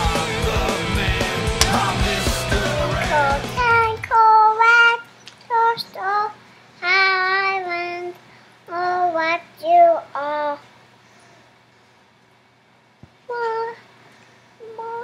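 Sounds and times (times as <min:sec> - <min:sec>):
rock music: 0:00.0 - 0:04.0
toddler girl singing: 0:03.0 - 0:10.7, 0:13.3 - 0:13.8, 0:14.6 - 0:15.0.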